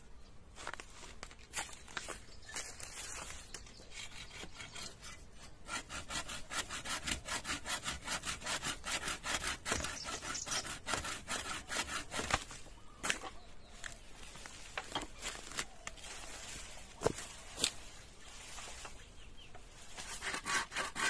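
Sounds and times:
saw cutting through bamboo: 3.8s - 12.6s, 19.9s - 21.0s.

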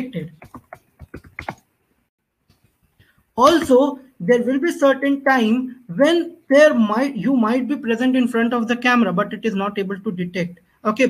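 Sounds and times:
keyboard typing: 0.0s - 1.7s.

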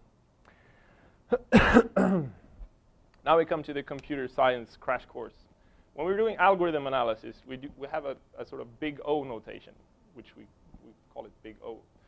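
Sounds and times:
man coughing: 1.3s - 2.4s.

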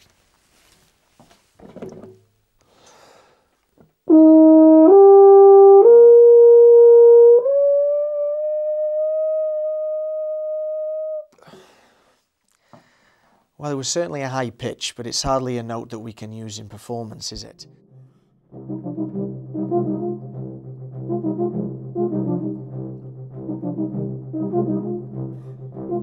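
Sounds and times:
breaths: 2.6s - 3.7s, 11.3s - 13.6s, 18.0s - 18.5s, 25.3s - 25.7s
euphonium notes: 4.1s - 11.3s, 17.4s - 26.0s.

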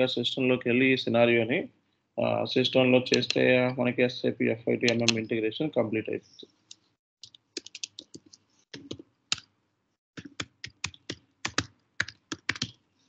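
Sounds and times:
computer keyboard keys clacking: 7.2s - 9.5s, 10.2s - 12.8s.

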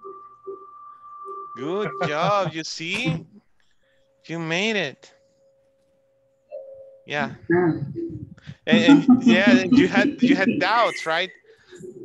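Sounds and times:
faint steady tone: 0.0s - 12.0s
person speaking: 1.6s - 3.4s, 7.1s - 12.0s.

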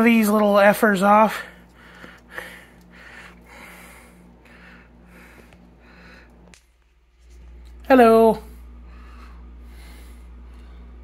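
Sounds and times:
soft breathing through nose: 1.4s - 6.5s, 8.7s - 11.0s.

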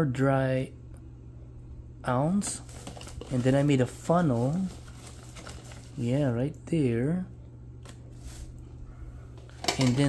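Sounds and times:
low steady hum: 0.0s - 10.0s
plastic bag crinkling: 2.5s - 6.2s, 9.5s - 10.0s.

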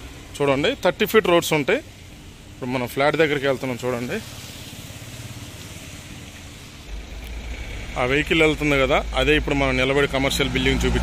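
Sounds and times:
vehicle engine idling: 0.0s - 11.0s
deeper rumble: 6.9s - 11.0s.

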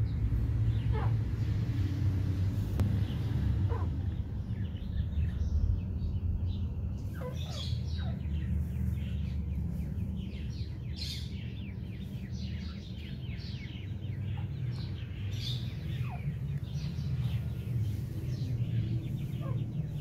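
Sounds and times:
steady low hum: 0.0s - 20.0s
chicks peeping: 0.4s - 1.7s, 2.5s - 20.0s.

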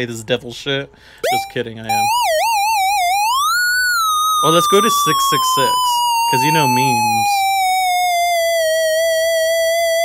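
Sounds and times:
wobbling square-wave tone: 1.3s - 10.0s.

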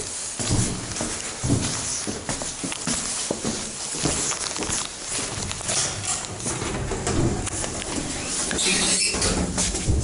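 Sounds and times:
footsteps on a staircase: 0.0s - 10.0s.

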